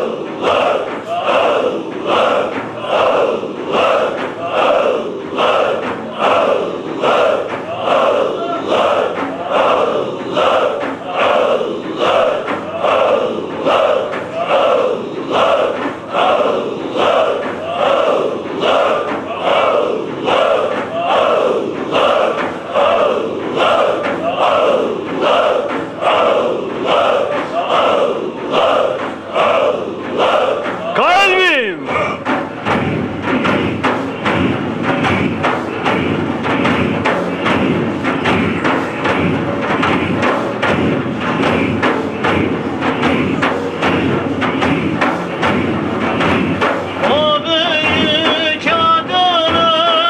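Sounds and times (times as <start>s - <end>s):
men chanting in unison: 0.0s - 50.0s.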